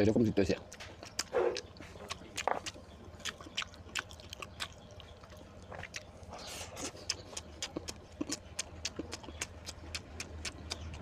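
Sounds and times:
person chewing food: 0:00.6 - 0:11.0.

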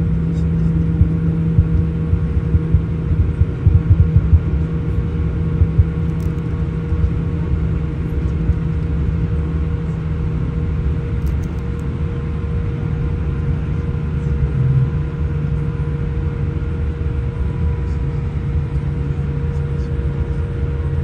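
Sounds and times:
jet engine hum: 0:00.0 - 0:21.0
wheels rumbling on taxiway: 0:00.0 - 0:21.0.

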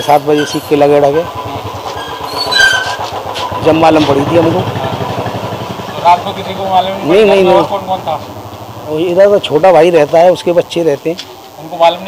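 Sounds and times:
motorcycle engine passing: 0:00.0 - 0:12.0.

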